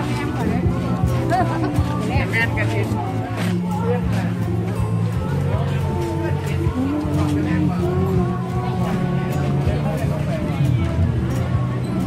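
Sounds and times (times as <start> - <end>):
background music: 0.0 - 12.0
people talking: 0.0 - 12.0.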